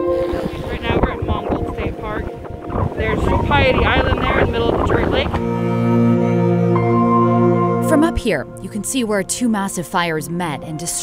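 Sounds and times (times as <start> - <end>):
wind buffeting microphone: 0.0 - 6.4
voices speaking: 0.5 - 5.4.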